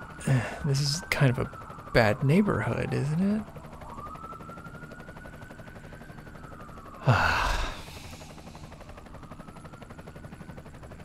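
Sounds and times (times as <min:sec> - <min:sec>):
distant police siren wailing: 0:00.0 - 0:11.0
man gasping: 0:07.0 - 0:08.6.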